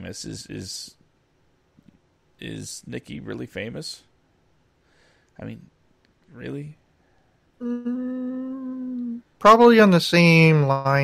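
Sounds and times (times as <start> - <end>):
person humming: 7.6 - 9.3.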